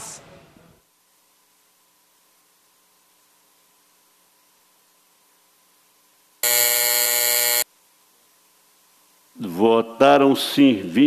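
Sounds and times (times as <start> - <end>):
electronic buzzer: 6.4 - 7.7.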